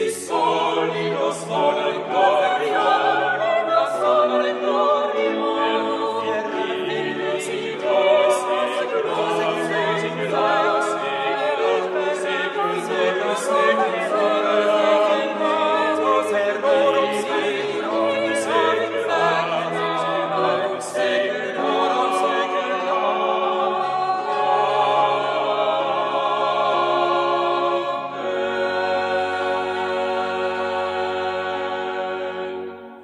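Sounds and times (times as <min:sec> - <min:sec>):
vocal ensemble singing polyphony: 0:00.0 - 0:33.0.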